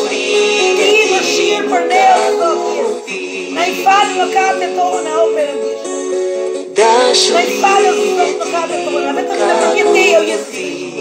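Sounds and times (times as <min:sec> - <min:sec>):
woman singing worship song: 0:00.0 - 0:05.8, 0:06.8 - 0:11.0
musical accompaniment: 0:00.0 - 0:11.0.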